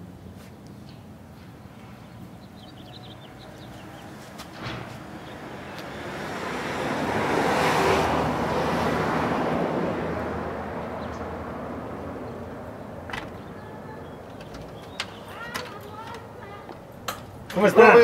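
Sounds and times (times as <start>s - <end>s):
vehicle passing by: 2.8s - 15.3s.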